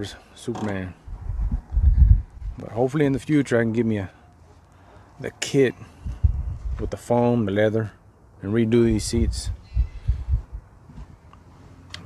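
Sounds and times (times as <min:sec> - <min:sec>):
muffled low thumps: 0:01.1 - 0:02.6, 0:06.0 - 0:06.9, 0:08.9 - 0:10.7.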